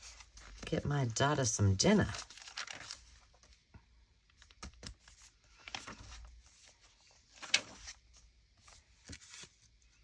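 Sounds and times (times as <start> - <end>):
paper page turning: 0.0 - 1.2, 1.9 - 3.6, 4.3 - 10.0.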